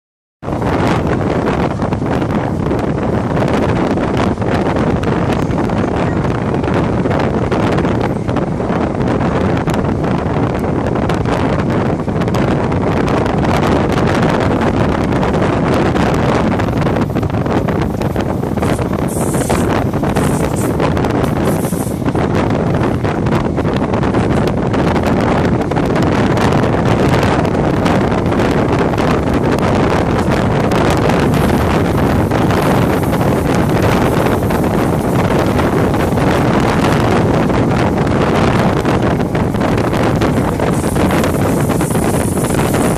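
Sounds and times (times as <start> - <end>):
train carriage rumbling on rails: 0.4 - 42.9
wind buffeting microphone: 0.4 - 42.9.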